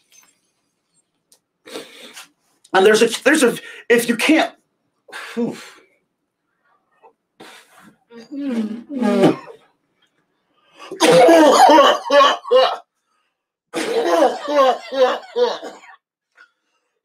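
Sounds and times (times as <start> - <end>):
man coughing hard: 10.9 - 12.8, 13.8 - 16.0.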